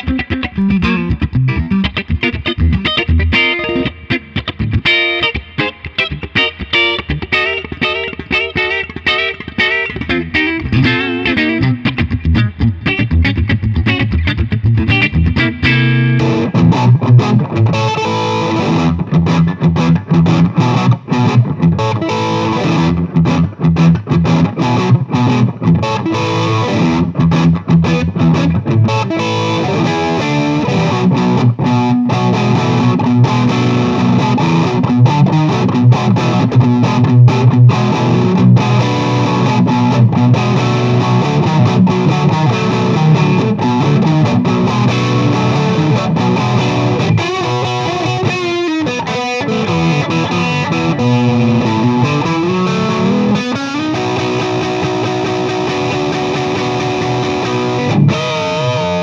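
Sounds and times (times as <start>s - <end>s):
electric guitar through amplifier: 0.0s - 59.0s.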